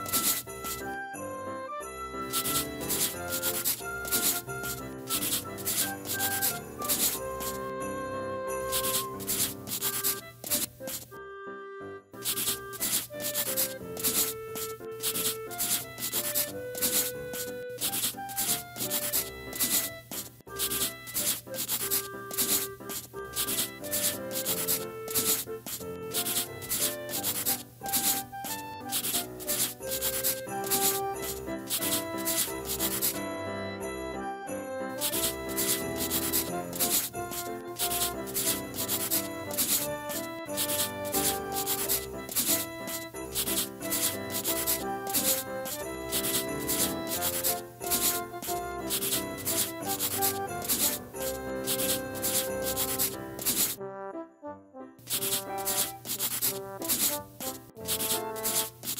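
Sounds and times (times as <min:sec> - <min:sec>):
marker scribbling on paper: 0:00.0 - 0:00.9, 0:02.3 - 0:07.7, 0:08.6 - 0:11.1, 0:12.2 - 0:33.2, 0:35.0 - 0:53.8, 0:55.0 - 0:58.9
instrumental melody: 0:00.0 - 0:58.9.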